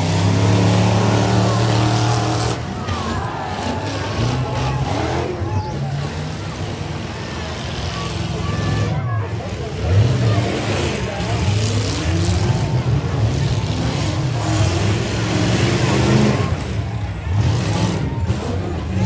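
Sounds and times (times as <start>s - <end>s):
crowd voices: 0.0s - 19.0s
truck engines revving: 0.0s - 19.0s.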